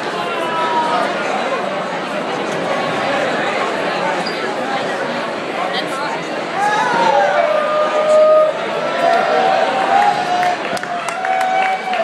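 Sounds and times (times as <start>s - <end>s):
crowd talking and calling out: 0.0s - 12.0s.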